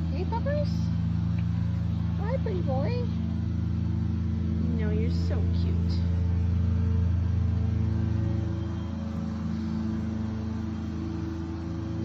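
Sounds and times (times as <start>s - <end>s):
lawn mower engine running: 0.0s - 12.0s.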